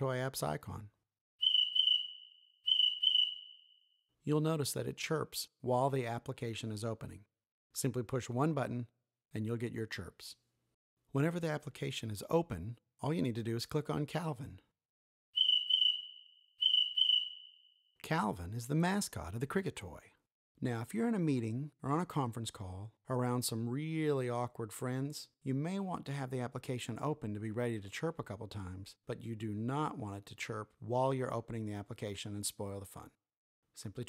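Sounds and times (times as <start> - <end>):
cricket chirps: 1.4 - 3.8, 15.4 - 17.8.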